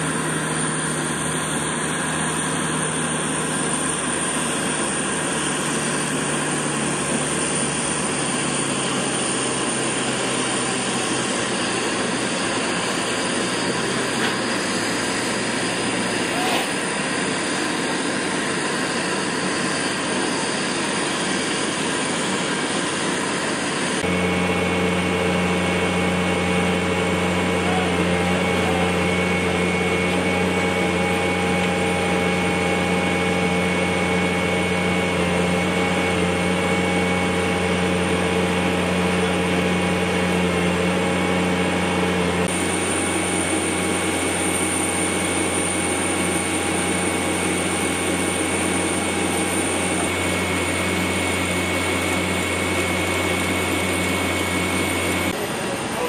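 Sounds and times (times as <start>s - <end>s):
machinery drone with high whine: 0.0s - 56.0s.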